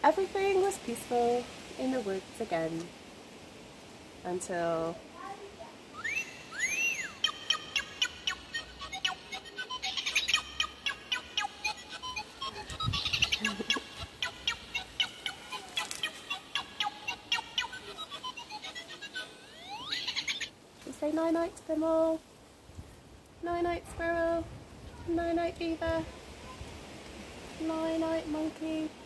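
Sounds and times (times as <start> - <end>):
high bird-like chirps and whistles: 5.9 - 20.5.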